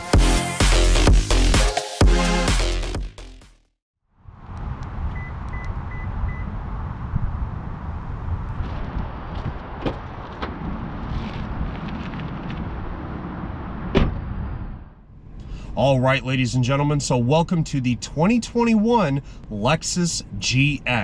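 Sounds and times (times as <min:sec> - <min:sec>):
wind rumble on microphone: 0:04.2 - 0:15.4
car door shutting: 0:09.8 - 0:10.6, 0:13.9 - 0:14.3.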